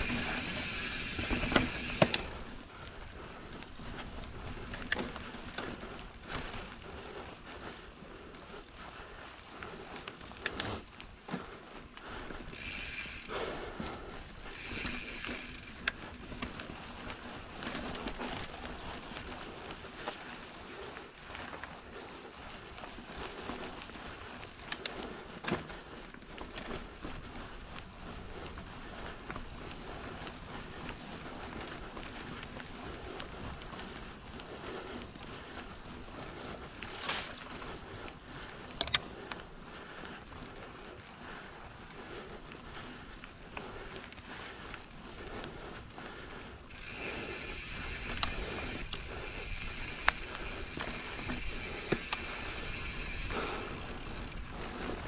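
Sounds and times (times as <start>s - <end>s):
bike rattling: 0.0s - 55.0s
bike tyres on dirt: 0.0s - 55.0s.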